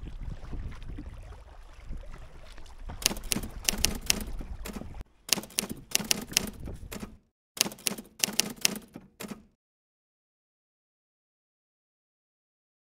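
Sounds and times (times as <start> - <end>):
low wind noise: 0.0 - 7.3
typewriter key clacks: 3.0 - 9.5.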